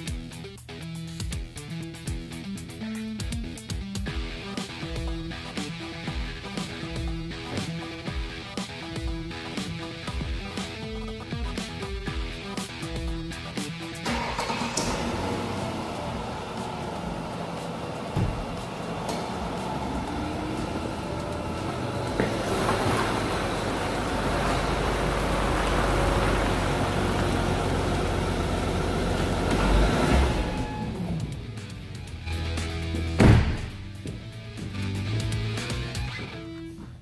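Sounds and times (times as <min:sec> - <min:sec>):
background music: 0:00.0 - 0:37.0
car engine and tyres: 0:04.7 - 0:36.9
loud thump: 0:18.1 - 0:18.6, 0:33.2 - 0:34.0.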